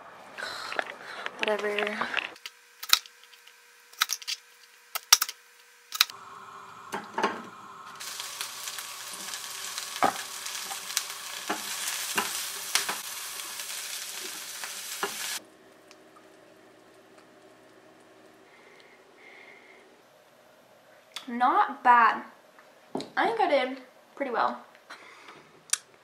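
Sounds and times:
vegetables sizzling in frying pan: 6.1s - 15.4s.

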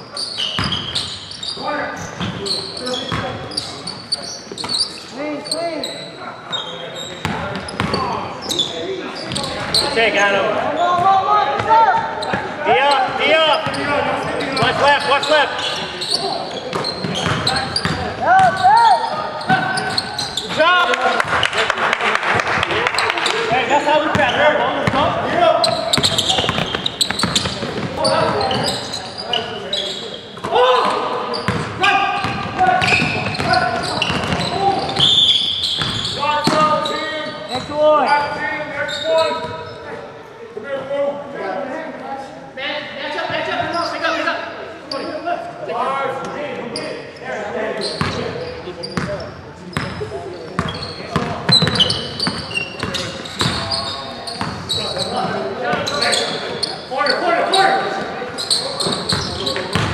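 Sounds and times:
people talking and shouting: 0.0s - 59.9s
basketball bouncing on wooden floor: 16.7s - 18.5s, 31.5s - 34.5s.

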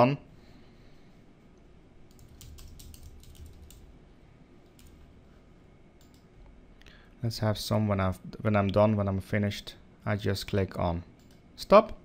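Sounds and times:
typing on computer keyboard: 2.1s - 3.8s, 4.8s - 5.0s.

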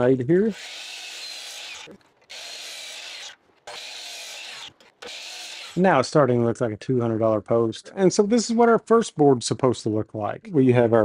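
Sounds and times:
miter saw cutting wood: 0.4s - 6.0s.

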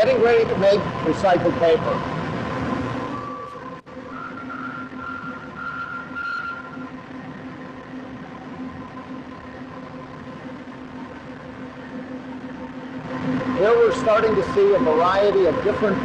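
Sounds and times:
high machine whine: 0.0s - 16.0s
industrial machinery hum: 0.0s - 16.0s.

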